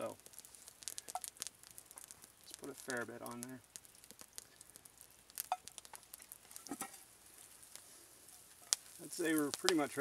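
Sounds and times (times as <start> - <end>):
butter sizzling in frying pan: 0.0 - 10.0
campfire crackles and pops: 0.0 - 10.0.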